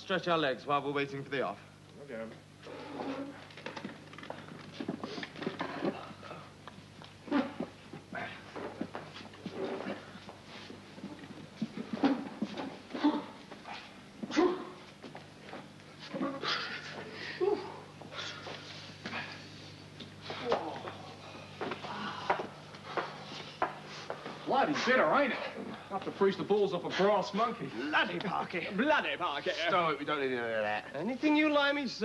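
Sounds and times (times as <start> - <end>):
steady low hum: 0.0 - 32.0.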